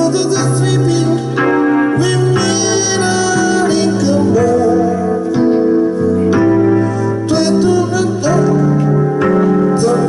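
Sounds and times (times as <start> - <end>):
man singing: 0.0 - 6.0, 7.2 - 10.0
electronic keyboard chords: 0.0 - 10.0.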